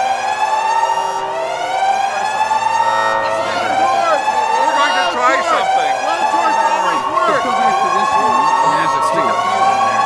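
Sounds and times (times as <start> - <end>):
rising siren-like glides: 0.0 - 10.0
indistinct voices: 1.2 - 10.0.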